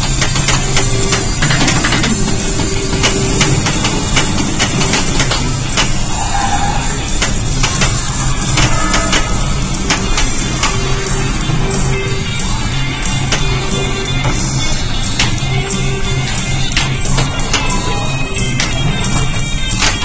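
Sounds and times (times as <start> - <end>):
flipper and ball clacks: 0.0 - 6.0
pinball game music and effects: 0.0 - 20.0.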